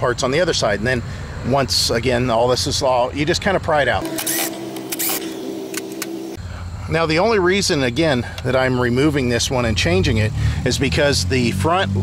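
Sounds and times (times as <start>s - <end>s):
steady hum: 4.0s - 7.0s.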